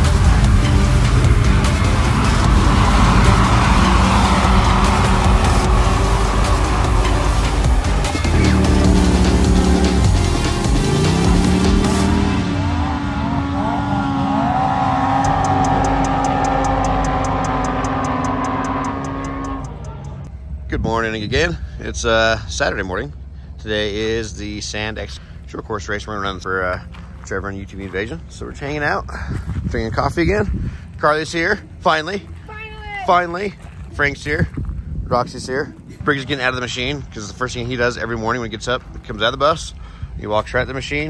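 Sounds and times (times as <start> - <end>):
loud background music: 0.0 - 12.9
engines revving: 0.0 - 29.0.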